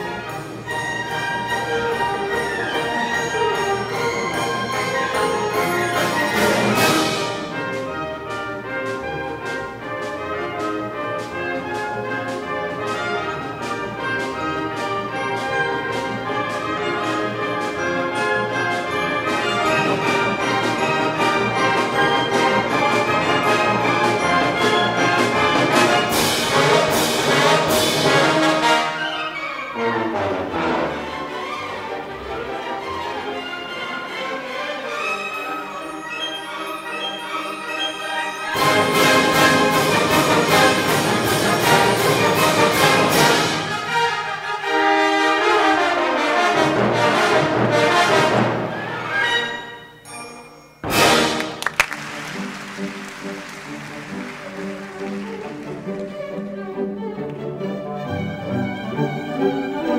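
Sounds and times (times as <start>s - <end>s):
orchestral music with brass: 0.0s - 59.9s.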